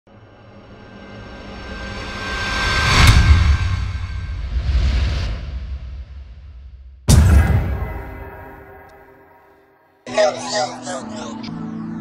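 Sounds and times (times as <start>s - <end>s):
sharp hit: 2.8s - 9.7s
deep rumbling boom: 3.4s - 9.1s.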